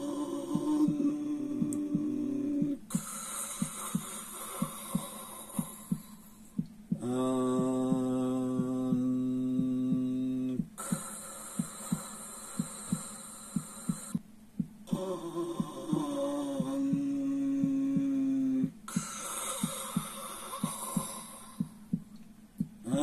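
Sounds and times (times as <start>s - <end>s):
man humming a long vowel: 0.0s - 3.9s, 7.0s - 10.9s, 14.8s - 19.2s
heartbeat thumps: 0.0s - 23.0s
breathing hiss: 1.6s - 8.7s, 9.5s - 14.2s, 14.9s - 22.0s.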